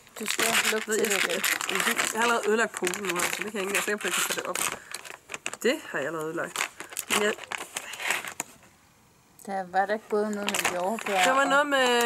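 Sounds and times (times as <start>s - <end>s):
foil bag crinkling: 0.0s - 8.5s, 10.3s - 12.0s.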